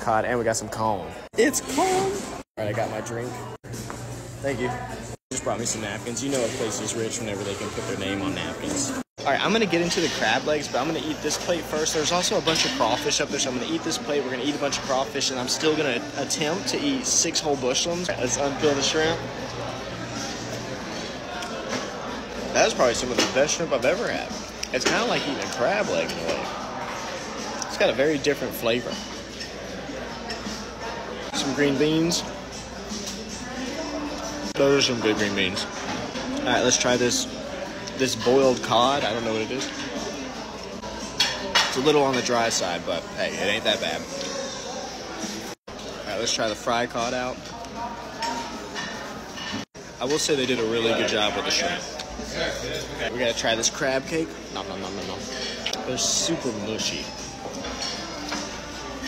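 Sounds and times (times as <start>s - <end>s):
murmur of distant voices: 0.0s - 59.0s
restaurant background chatter: 0.0s - 59.0s.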